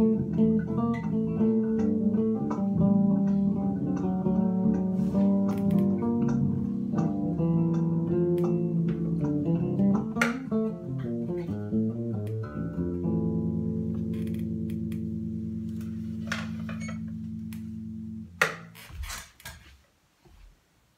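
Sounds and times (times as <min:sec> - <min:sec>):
electric bass guitar notes: 0:00.0 - 0:18.8.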